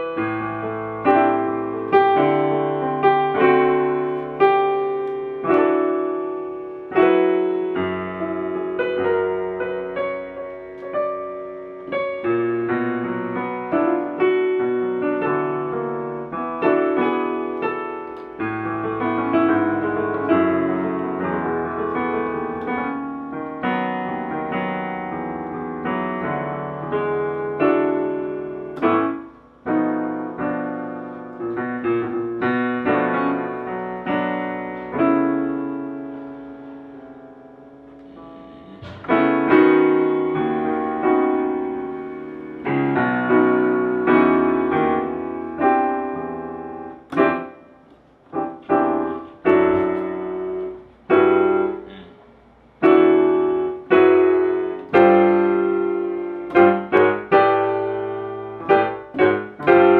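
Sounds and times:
digital piano chords: 0.0 - 59.9.

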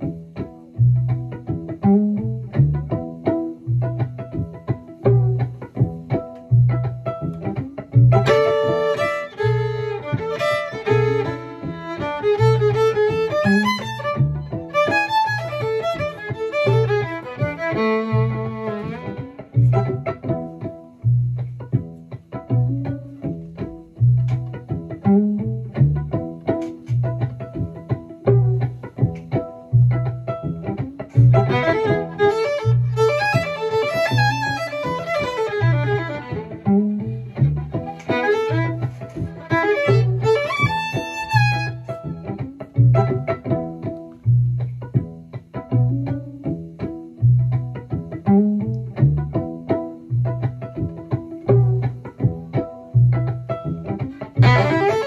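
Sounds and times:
repeating bass groove: 0.0 - 55.0
solo violin playing: 8.1 - 19.9, 31.3 - 42.2, 54.2 - 55.0.

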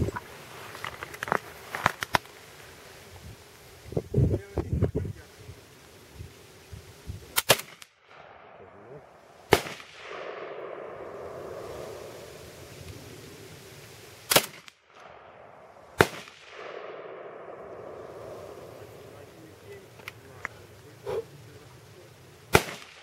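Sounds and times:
shotgun shots: 7.4 - 8.6, 9.5 - 11.6, 14.3 - 18.4, 22.5 - 23.0.

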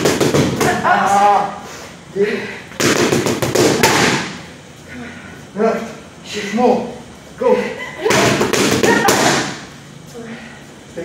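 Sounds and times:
boxing gloves smacking mitts: 0.0 - 0.8, 2.8 - 4.4.

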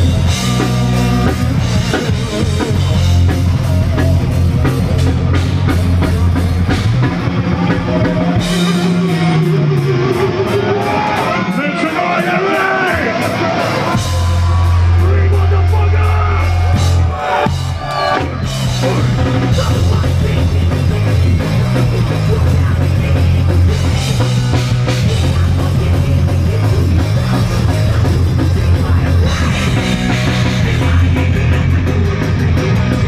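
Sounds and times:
bass guitar: 0.0 - 33.0
distorted electric guitars: 0.0 - 33.0
fast drumming: 0.0 - 33.0.

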